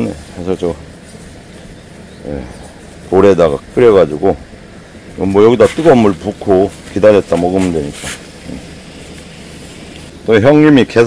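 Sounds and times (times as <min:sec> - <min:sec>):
even hiss: 0:00.0 - 0:11.0
low background rumble: 0:00.0 - 0:11.0.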